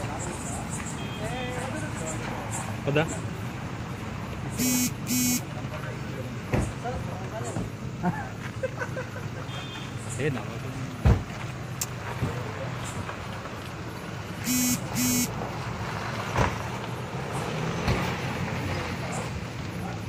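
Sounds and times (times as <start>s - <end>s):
short beeps: 4.6s - 5.4s, 14.4s - 15.3s.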